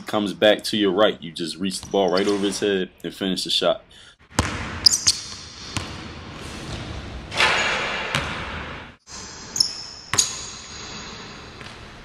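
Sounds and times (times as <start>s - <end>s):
basketball striking gym floor: 4.3s - 6.2s, 6.8s - 8.8s, 10.1s - 10.9s.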